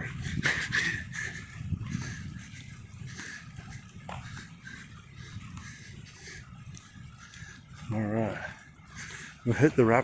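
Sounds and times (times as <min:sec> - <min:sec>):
footsteps on dirt trail: 0:01.9 - 0:05.9.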